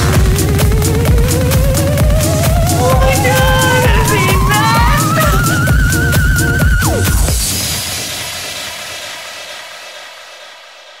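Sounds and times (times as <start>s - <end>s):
electronic dance music: 2.8s - 6.2s.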